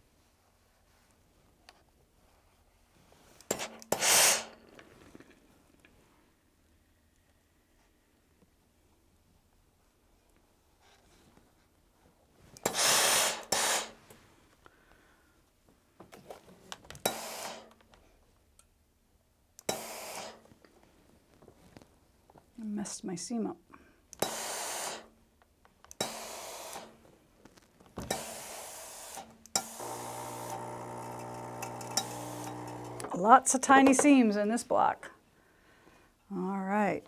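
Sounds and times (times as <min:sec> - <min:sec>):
steam iron hissing: 0:03.5 - 0:04.6, 0:12.6 - 0:14.0, 0:17.0 - 0:17.7, 0:19.7 - 0:20.4, 0:24.2 - 0:25.1, 0:26.0 - 0:27.0, 0:28.1 - 0:33.1
steam iron click: 0:17.0 - 0:17.8, 0:19.6 - 0:20.4, 0:24.2 - 0:25.1, 0:25.9 - 0:27.0, 0:28.1 - 0:33.2.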